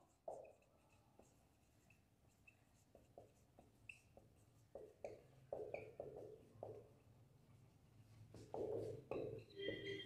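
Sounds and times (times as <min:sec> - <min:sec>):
marker tapping on whiteboard: 0:00.0 - 0:07.1, 0:08.3 - 0:10.0
marker squeaking on whiteboard: 0:00.0 - 0:07.2, 0:08.3 - 0:10.0.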